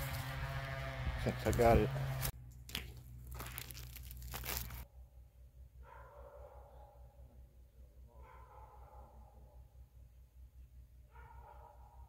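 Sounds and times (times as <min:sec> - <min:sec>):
dry leaves crunching: 0:00.0 - 0:04.8.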